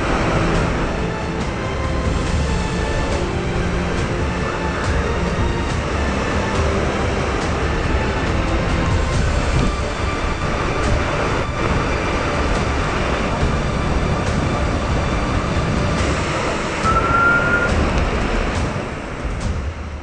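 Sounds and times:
driving rain: 0.0s - 20.0s
typhoon wind: 0.0s - 20.0s
high wind whistle: 9.0s - 18.8s.

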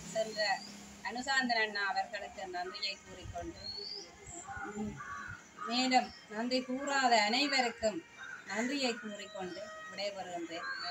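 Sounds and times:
crow cawing: 4.5s - 6.7s, 8.1s - 9.7s.

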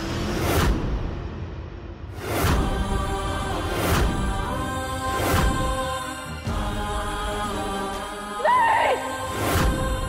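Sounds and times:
dramatic score with sustained tones: 0.0s - 10.0s
chant-like vocal: 2.2s - 10.0s.

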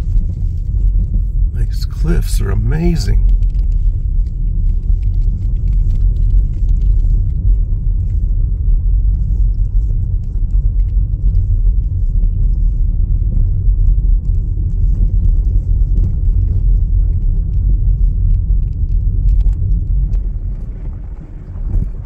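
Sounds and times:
car rumbling on dirt road: 19.0s - 22.0s.

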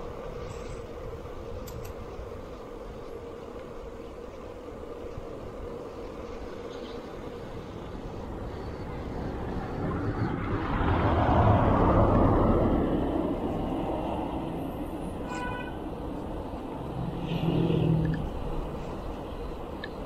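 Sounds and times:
car passing by: 8.7s - 15.4s, 16.0s - 19.4s.

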